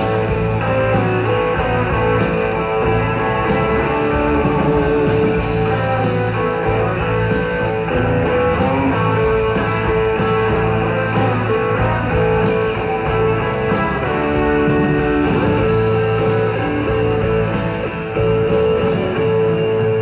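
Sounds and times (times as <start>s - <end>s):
bass and drums: 0.0s - 20.0s
electric guitars sustained notes: 0.0s - 20.0s.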